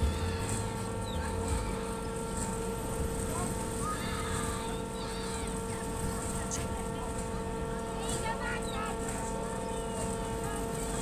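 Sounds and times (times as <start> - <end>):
faint distant voices: 0.0 - 11.0
low rumble on microphone: 0.0 - 11.0
steady mechanical hum: 0.0 - 11.0.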